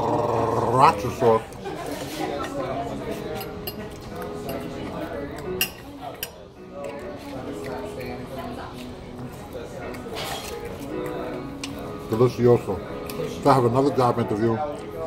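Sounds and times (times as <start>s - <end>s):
murmur of voices: 0.0s - 15.0s
restaurant background music: 0.0s - 15.0s
fork clinking against plate: 3.2s - 7.0s, 9.9s - 11.8s.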